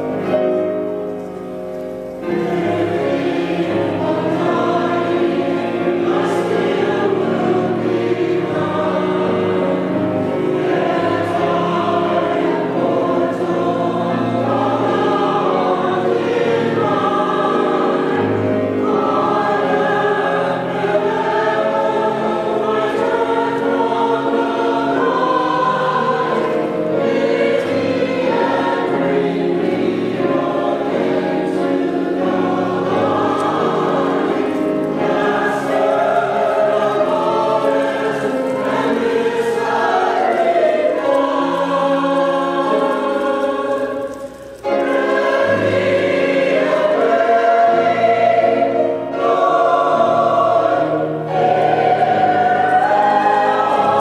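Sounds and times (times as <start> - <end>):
church choir singing: 0.0 - 54.0
piano or organ accompaniment: 0.0 - 54.0.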